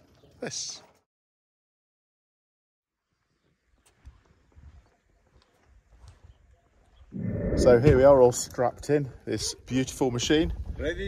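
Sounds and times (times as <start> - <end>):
faint low thumps: 7.2 - 8.5.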